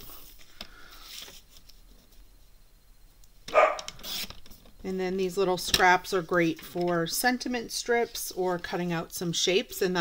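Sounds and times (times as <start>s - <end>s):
dog barking: 3.5s - 3.9s.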